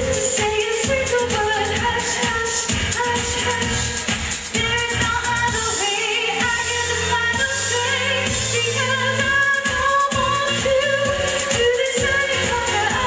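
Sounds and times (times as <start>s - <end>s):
disco backing track with beat: 0.0s - 13.0s
woman singing into microphone: 0.0s - 13.0s.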